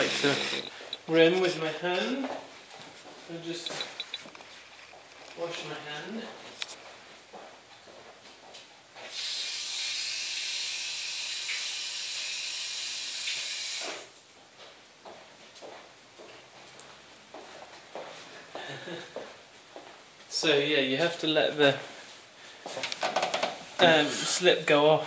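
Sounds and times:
running tap water: 0:09.1 - 0:13.9.

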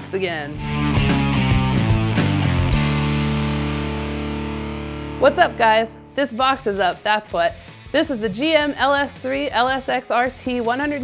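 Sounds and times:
electric guitar rock sting: 0:00.6 - 0:06.2.

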